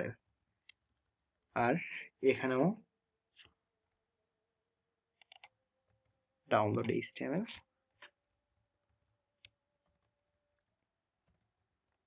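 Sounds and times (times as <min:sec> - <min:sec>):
keyboard and mouse clicks: 0:05.2 - 0:05.6, 0:06.6 - 0:08.2.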